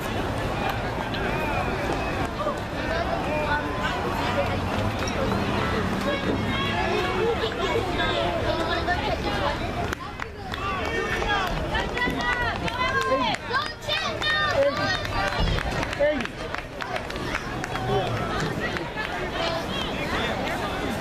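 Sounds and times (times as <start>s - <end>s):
people talking and calling: 0.0s - 21.0s.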